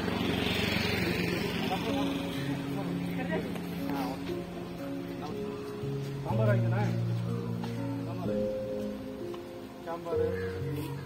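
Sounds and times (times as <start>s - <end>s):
motor vehicle passing: 0.0s - 9.1s
voices: 0.0s - 11.0s.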